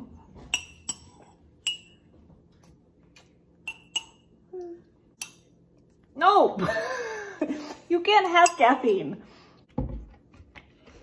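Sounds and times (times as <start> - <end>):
spoon clinking against ceramic mug: 0.5 - 2.0, 3.6 - 4.3.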